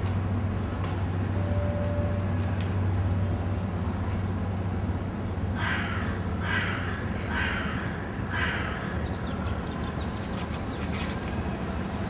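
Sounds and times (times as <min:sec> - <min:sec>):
bird cawing: 0:05.6 - 0:09.0.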